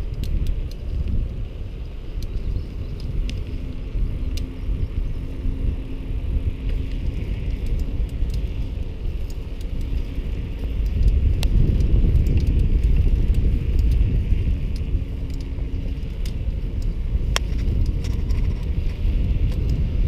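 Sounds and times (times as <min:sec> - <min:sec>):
small sharp clicks and rattles: 0:00.0 - 0:05.2, 0:06.6 - 0:20.0
bicycle tyres rolling on pavement: 0:00.0 - 0:20.0
wind rumble on microphone: 0:00.0 - 0:20.0.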